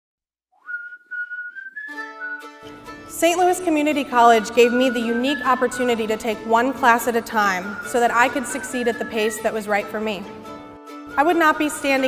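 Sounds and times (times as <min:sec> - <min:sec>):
whistled tune: 0:00.5 - 0:02.8, 0:04.1 - 0:10.3
instrument chords: 0:01.9 - 0:07.2.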